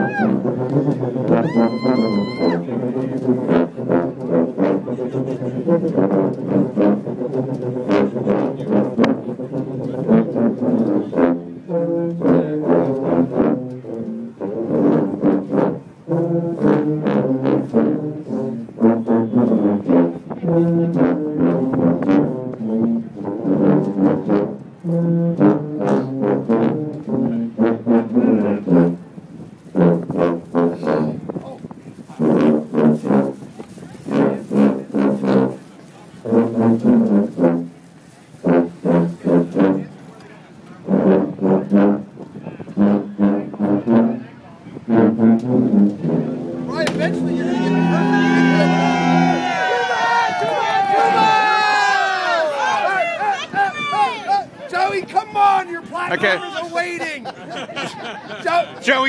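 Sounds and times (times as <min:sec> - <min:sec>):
sousaphones playing detached notes: 0:46.6 - 0:50.8.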